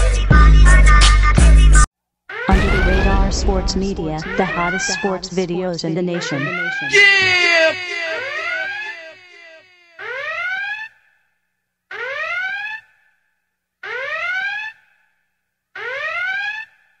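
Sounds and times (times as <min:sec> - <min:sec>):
rising electronic alarm tone: 0:02.4 - 0:10.7.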